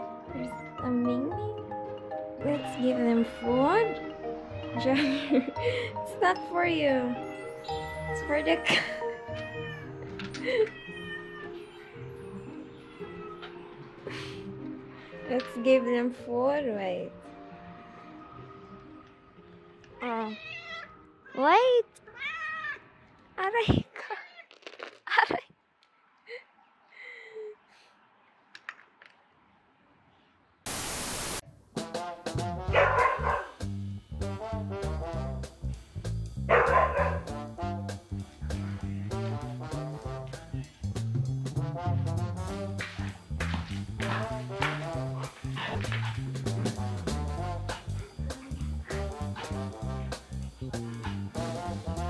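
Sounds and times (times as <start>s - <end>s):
background music with held notes: 0.0s - 20.0s, 31.5s - 52.0s
cat meowing: 9.1s - 9.9s, 10.5s - 11.9s, 20.2s - 21.1s
loud hiss burst: 30.7s - 31.4s
husky vocalising: 36.5s - 37.3s, 44.0s - 52.0s.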